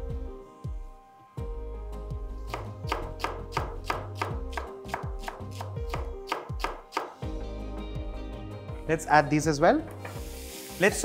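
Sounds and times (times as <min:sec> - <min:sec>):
knife chopping on wooden board: 0:02.5 - 0:07.2.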